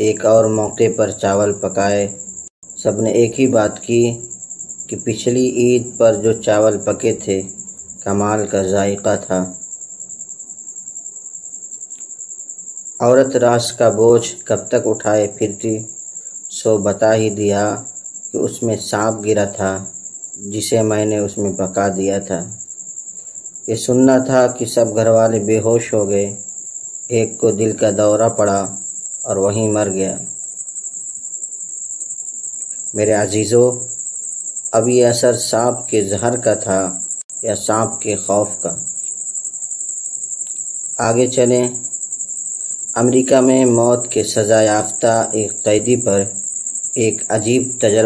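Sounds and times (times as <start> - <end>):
cricket chirping: 0.0 - 48.0
insect trilling: 0.0 - 48.0.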